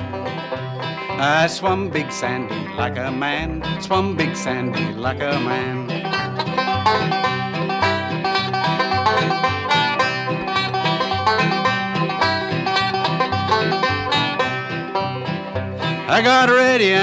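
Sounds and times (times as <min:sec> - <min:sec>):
acoustic guitar strumming: 0:00.0 - 0:17.0
banjo picking: 0:00.0 - 0:17.0.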